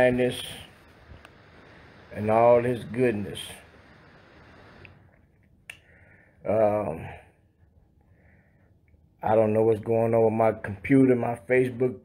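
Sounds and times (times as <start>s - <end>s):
faint room noise: 0.0s - 12.0s.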